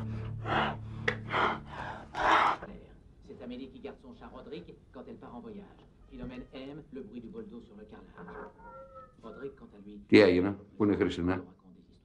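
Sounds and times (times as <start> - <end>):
heavy breathing with gasps: 0.0 - 2.6
soft background music: 0.0 - 12.0.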